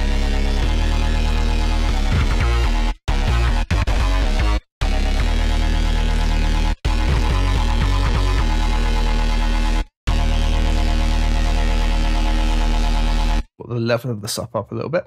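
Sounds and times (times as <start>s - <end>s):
synth bass held low notes: 0.0s - 13.5s.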